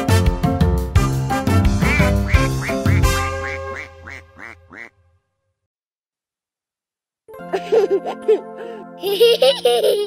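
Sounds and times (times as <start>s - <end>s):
cartoon duck quacking: 1.9s - 4.9s.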